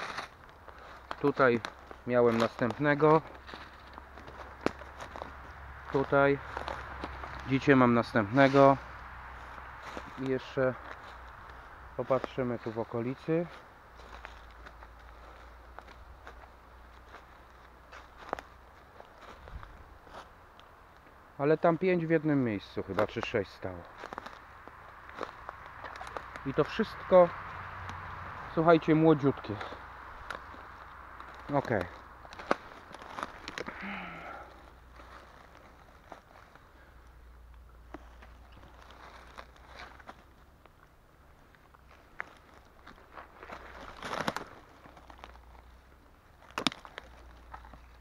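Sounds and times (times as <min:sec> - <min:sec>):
twig cracking: 0:00.0 - 0:07.6, 0:23.0 - 0:28.3, 0:29.4 - 0:40.9, 0:41.5 - 0:48.0
footsteps on dry leaves: 0:00.0 - 0:20.8, 0:22.4 - 0:48.0.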